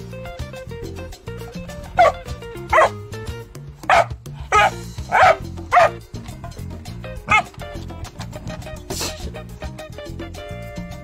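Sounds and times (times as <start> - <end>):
backing music: 0.0 - 11.0
dog barking: 1.9 - 3.0, 3.8 - 6.0, 7.3 - 7.5.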